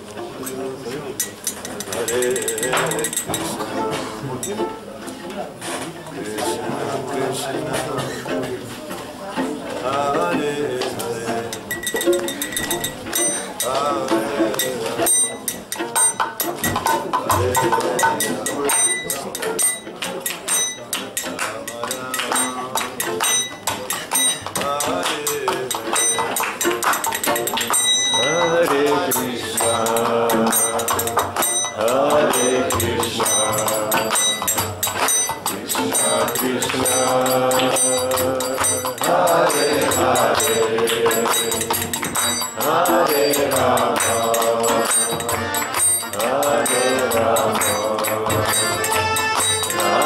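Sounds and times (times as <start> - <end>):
person singing: 0.0 - 4.9, 9.4 - 19.8, 21.0 - 50.0
people talking: 0.0 - 50.0
hand cymbals clashing: 1.1 - 3.7, 11.5 - 50.0
harmonium playing held chords: 45.2 - 50.0.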